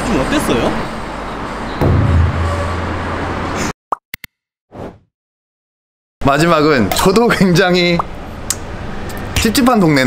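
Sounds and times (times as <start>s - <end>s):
street traffic: 0.0s - 3.7s, 6.4s - 10.0s.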